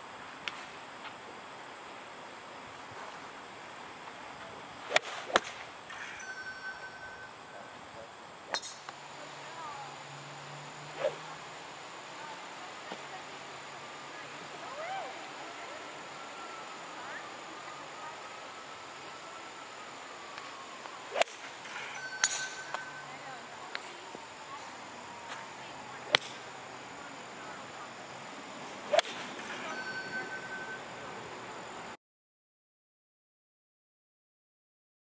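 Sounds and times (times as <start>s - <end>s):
faint outdoor background: 0.0s - 32.0s
golf club striking ball: 8.5s - 9.1s, 22.2s - 23.0s.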